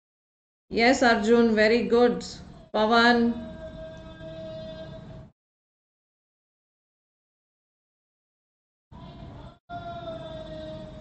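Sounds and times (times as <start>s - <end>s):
low background noise: 9.0s - 11.0s.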